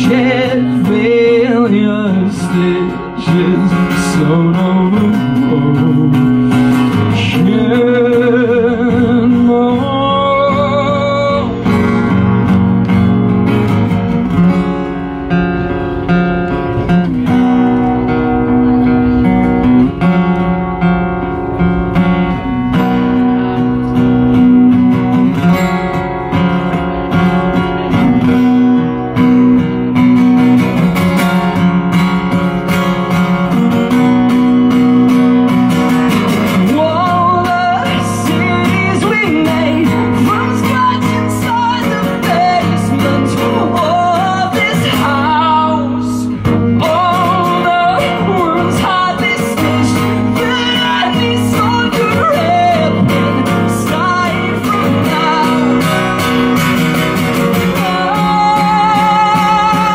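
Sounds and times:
man singing: 0.0s - 12.4s, 33.9s - 59.9s
acoustic guitar strumming: 0.0s - 59.9s.

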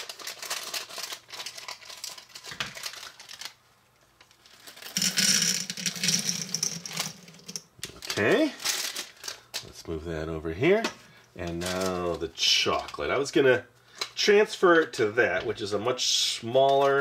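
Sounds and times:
plastic bag crinkling: 0.0s - 3.6s, 4.4s - 9.8s, 11.4s - 13.0s
candies clattering into bowl: 4.5s - 9.3s.

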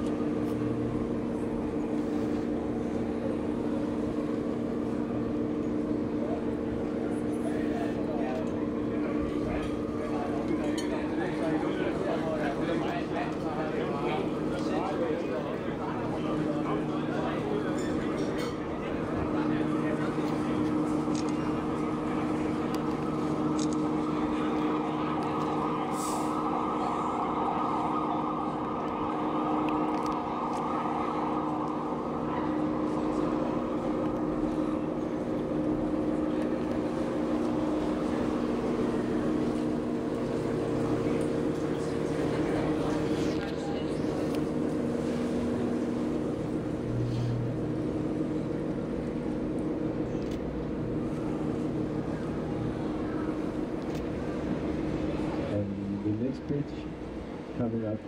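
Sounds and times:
boat engine droning: 0.0s - 58.0s.

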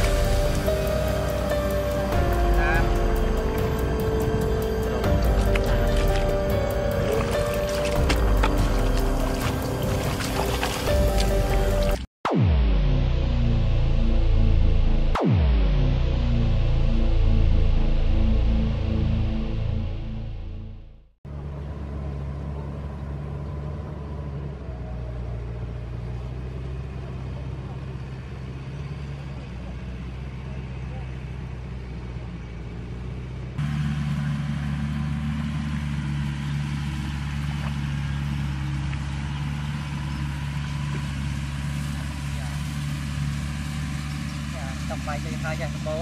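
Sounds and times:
tractor engine running: 0.0s - 12.1s, 21.3s - 46.0s.

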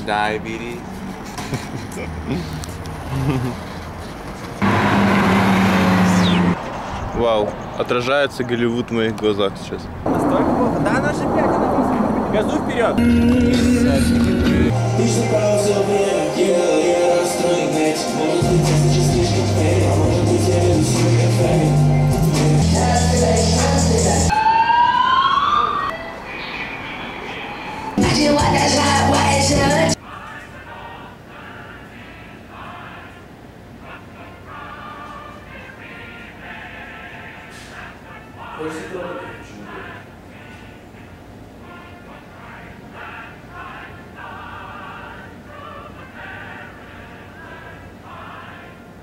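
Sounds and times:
traffic rumble: 0.0s - 16.1s, 25.0s - 29.9s
bass-heavy rap beat: 13.5s - 24.3s
emergency siren wailing: 24.3s - 28.3s.

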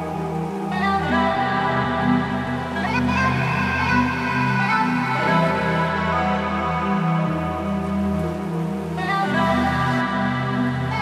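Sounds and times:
soft hiss: 0.0s - 11.0s
synth chords: 0.0s - 11.0s.

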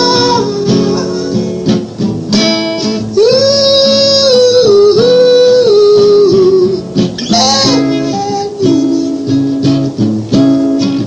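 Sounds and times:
man singing long notes: 0.0s - 1.6s, 2.8s - 9.4s
strummed acoustic guitar: 0.0s - 11.0s.

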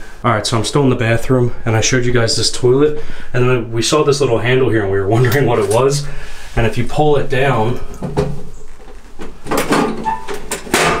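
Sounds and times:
metal panel clattering open: 9.5s - 11.0s.

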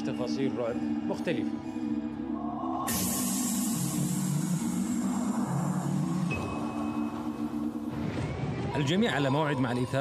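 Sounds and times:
low droning tones: 0.0s - 9.1s.

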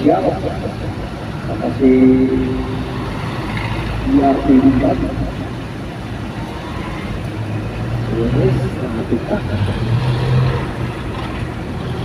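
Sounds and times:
low engine hum: 0.0s - 12.0s
traffic engine noise: 0.0s - 12.0s.

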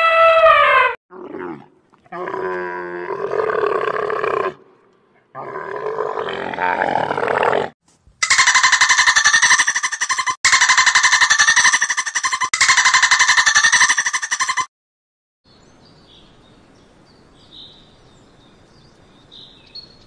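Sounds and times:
camel grunting roars: 5.2s - 7.8s
dolphin pulsed chattering: 8.2s - 14.7s.

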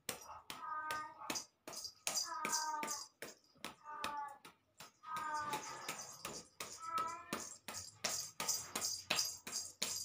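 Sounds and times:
rhythmic hand slaps: 0.0s - 10.0s.

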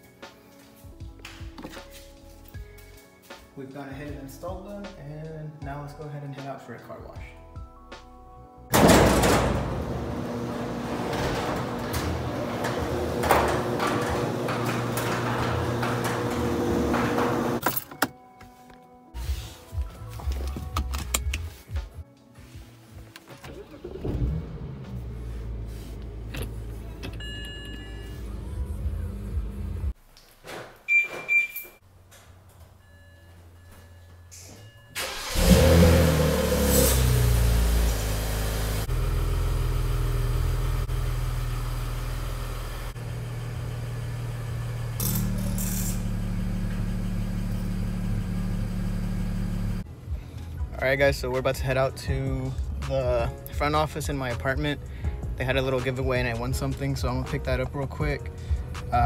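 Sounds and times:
car engine starting and idling: 8.7s - 17.7s, 23.2s - 30.0s, 35.0s - 49.9s.

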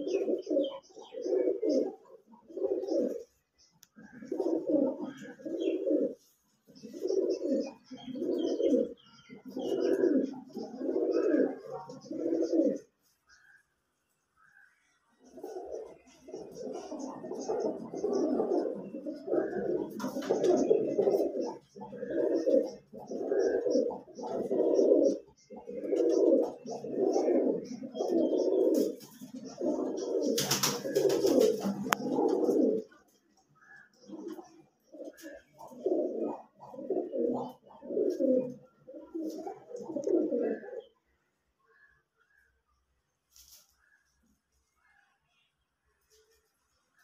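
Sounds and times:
pigeons cooing: 0.0s - 13.7s, 15.2s - 42.4s.

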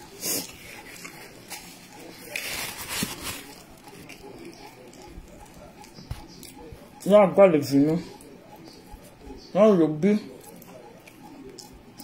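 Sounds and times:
wet chewing and mouth sounds: 0.0s - 12.0s.

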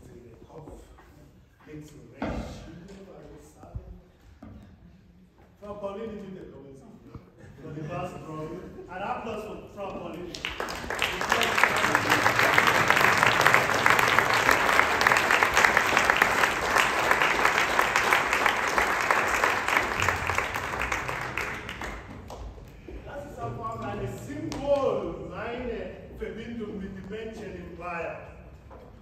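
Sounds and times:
audience applauding: 10.1s - 22.8s.

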